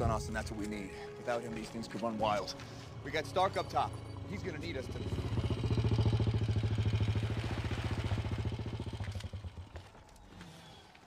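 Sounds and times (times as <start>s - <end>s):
motorcycle engine chugging: 2.4s - 10.1s.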